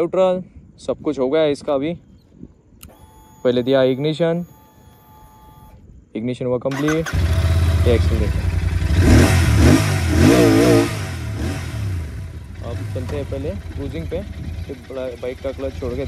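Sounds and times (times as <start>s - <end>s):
electric starter: 6.7s - 7.8s
motorcycle engine starting and revving: 6.7s - 16.0s.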